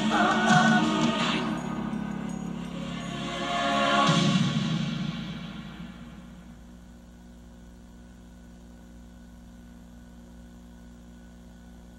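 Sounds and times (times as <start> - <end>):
orchestral chord: 0.0 - 6.7
faint tape hiss: 0.0 - 11.9
low electrical hum: 0.0 - 11.9.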